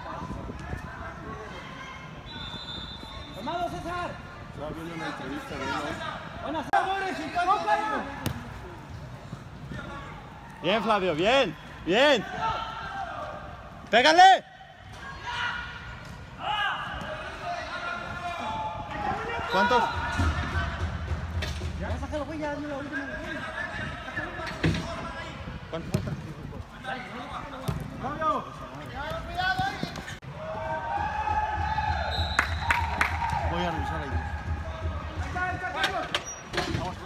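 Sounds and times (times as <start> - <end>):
soccer ball being kicked: 8.2 - 8.5, 25.8 - 26.3, 27.6 - 28.1.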